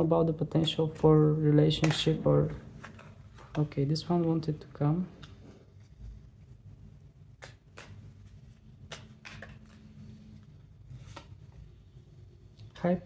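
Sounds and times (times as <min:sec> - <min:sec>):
faint low hum: 0:00.0 - 0:13.0
cards snapping and sliding: 0:08.8 - 0:09.8.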